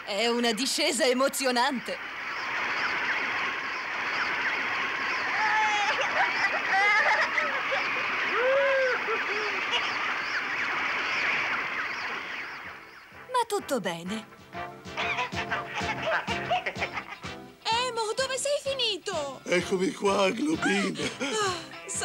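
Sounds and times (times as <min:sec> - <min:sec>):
wordless cries: 0:04.8 - 0:12.7, 0:19.8 - 0:22.0.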